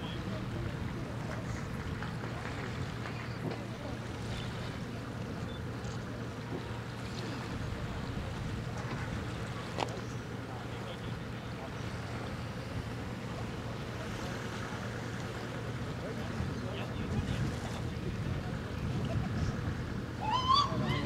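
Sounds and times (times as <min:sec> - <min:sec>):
low ship engine drone: 0:00.0 - 0:21.0.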